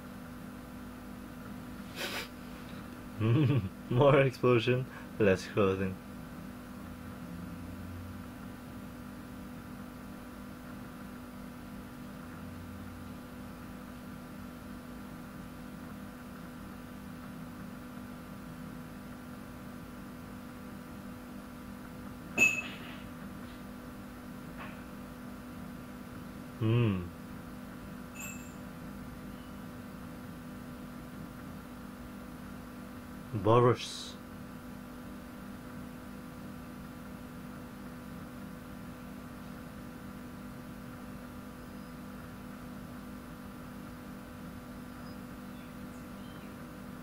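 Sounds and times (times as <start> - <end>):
low room hum: 0.0 - 47.0
person's short falling voice: 26.6 - 27.1.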